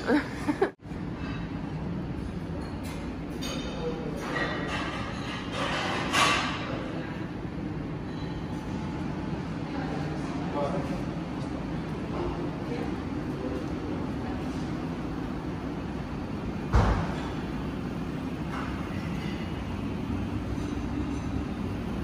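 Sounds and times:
low room rumble: 0.0s - 22.0s.

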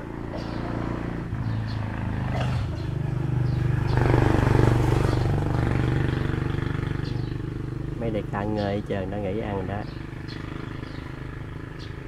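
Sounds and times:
motor engine humming: 0.0s - 12.0s.

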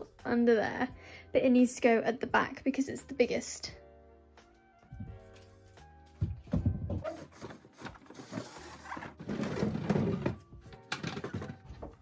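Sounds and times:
background music: 0.0s - 12.0s
table scraping: 7.2s - 11.7s.

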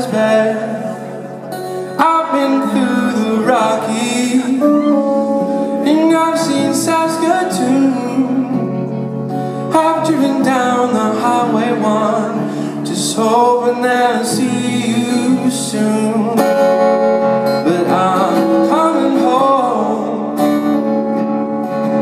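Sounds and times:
acoustic guitar: 0.0s - 22.0s
man singing: 0.0s - 22.0s.

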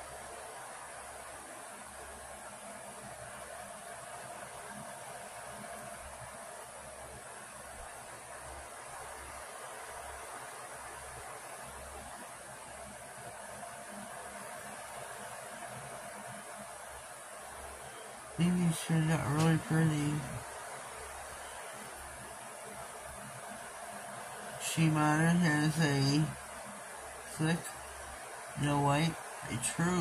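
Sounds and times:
background hiss: 0.0s - 30.0s
faint low hum: 0.0s - 30.0s.

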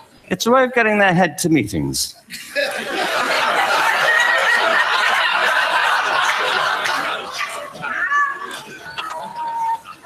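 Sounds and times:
audience laughing: 2.3s - 7.9s.

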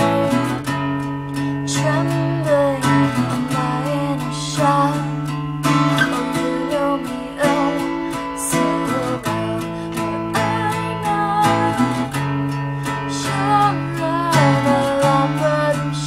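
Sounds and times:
acoustic guitar strummed chords: 0.0s - 16.0s
woman singing: 0.0s - 16.0s.

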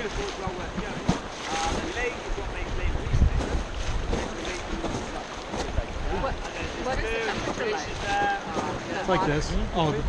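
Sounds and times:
rushing whitewater river: 0.0s - 10.0s
wind buffeting microphone: 0.0s - 10.0s.

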